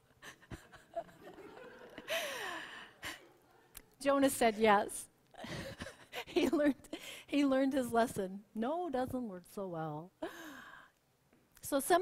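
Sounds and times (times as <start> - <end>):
woman's laughing sigh: 2.0 - 3.3, 10.2 - 10.9.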